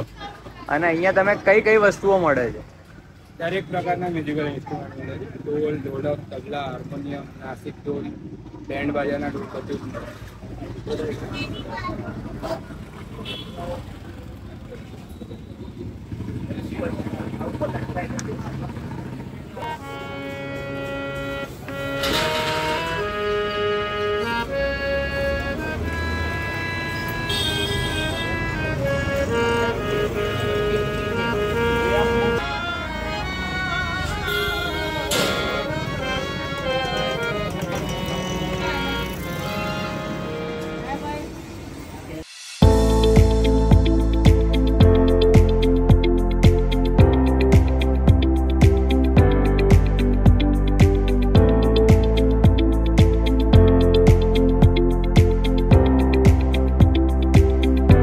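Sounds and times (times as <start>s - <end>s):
street traffic: 0.0s - 58.0s
harmonium held chord: 19.6s - 41.3s, 42.6s - 58.0s
people talking: 29.3s - 32.6s, 34.4s - 42.4s.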